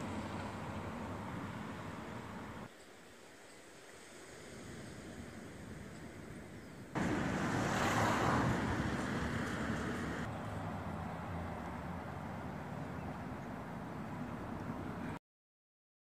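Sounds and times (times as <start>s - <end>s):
outdoor rushing hiss and rumble: 0.0s - 15.2s.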